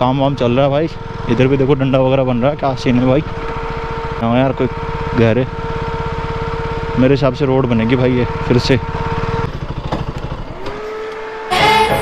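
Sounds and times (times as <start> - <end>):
motorcycle engine idling: 0.0 - 10.8
music: 11.5 - 12.0.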